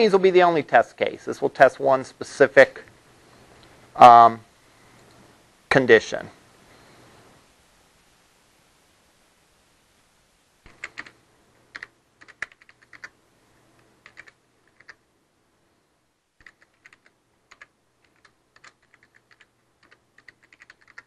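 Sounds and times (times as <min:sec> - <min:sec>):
computer keyboard typing: 0:10.6 - 0:13.2, 0:14.0 - 0:15.0, 0:16.4 - 0:21.0.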